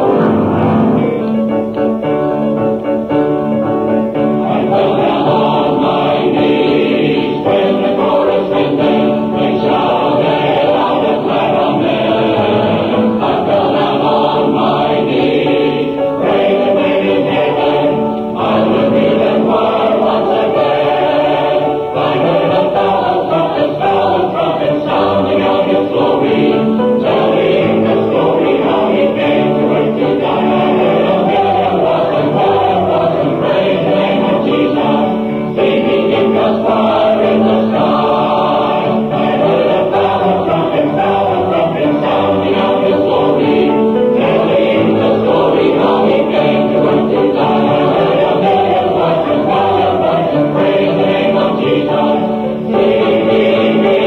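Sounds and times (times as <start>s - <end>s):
choir singing in harmony: 0.0s - 54.0s.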